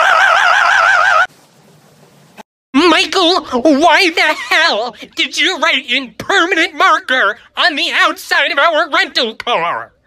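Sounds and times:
high-pitched warbling laugh: 0.0 - 1.3
faint hiss: 1.2 - 2.4.

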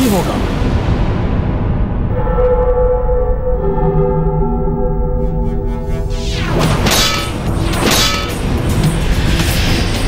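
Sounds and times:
dramatic background music: 0.0 - 10.0
metallic clang: 5.9 - 8.6.

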